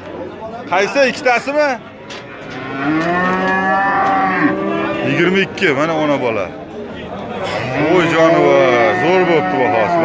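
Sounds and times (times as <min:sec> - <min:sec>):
bull mooing: 0:02.3 - 0:05.4, 0:07.5 - 0:10.0.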